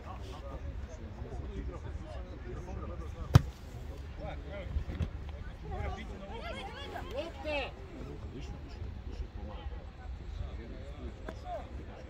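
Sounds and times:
football kicked hard: 3.3 - 3.6.

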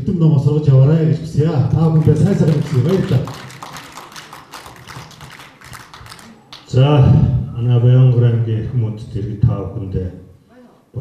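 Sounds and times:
audience applauding: 1.8 - 6.7.

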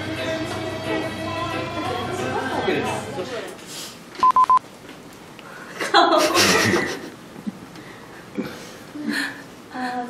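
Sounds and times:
quick electronic beeps: 4.2 - 4.6
woman speaking: 9.7 - 10.0.

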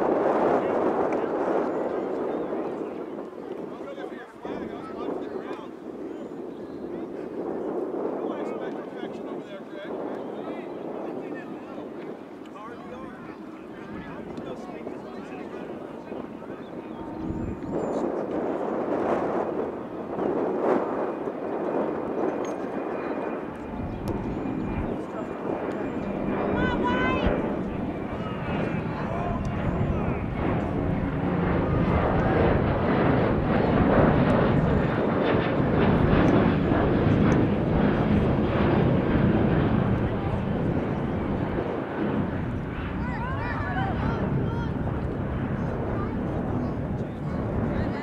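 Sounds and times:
distant players shouting: 26.5 - 27.5.

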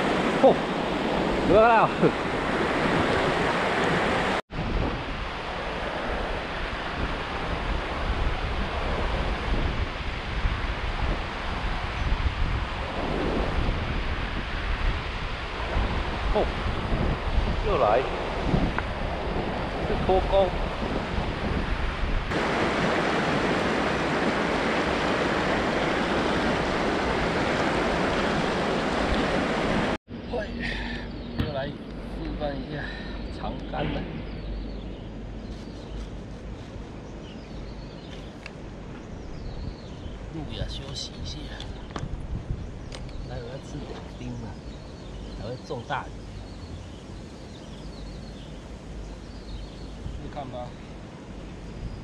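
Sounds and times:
wind buffeting microphone: 0.0 - 52.0
river rushing over rocks: 22.3 - 30.0.

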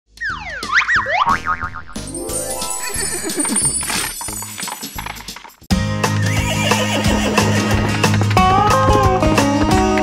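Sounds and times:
bright music intro: 1.8 - 4.6.

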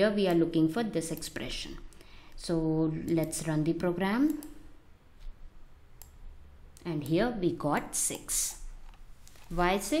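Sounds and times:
computer mouse clicks: 4.2 - 4.6, 6.0 - 7.2.

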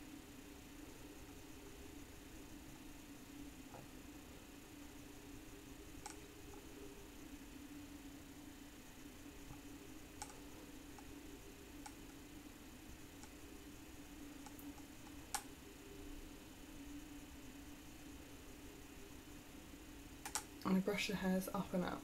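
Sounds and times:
low steady hum: 0.0 - 22.0
faint clicks: 20.2 - 20.5.

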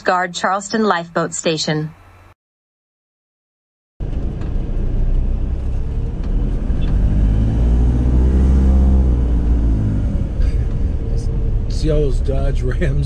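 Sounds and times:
road rumble: 4.0 - 13.0
vehicle engine: 4.0 - 13.0.

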